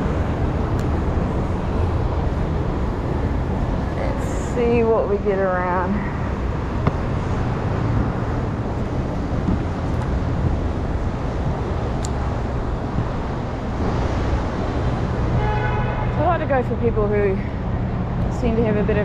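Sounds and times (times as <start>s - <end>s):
passing vehicles rumble: 0.0s - 19.0s.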